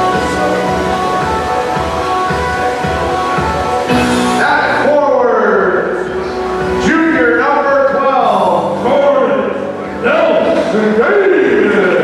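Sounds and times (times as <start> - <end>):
echoing voice over loudspeakers: 0.0 - 12.0.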